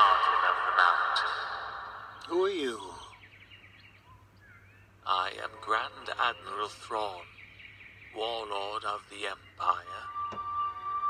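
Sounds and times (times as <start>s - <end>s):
low steady hum: 0.0s - 11.0s
bird trilling: 0.8s - 11.0s
bird chirps: 1.2s - 11.0s.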